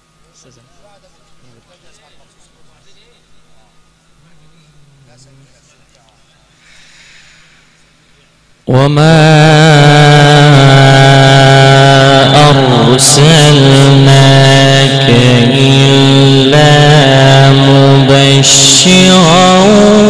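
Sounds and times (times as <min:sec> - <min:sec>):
man chanting melodically: 0:08.2 - 0:20.0.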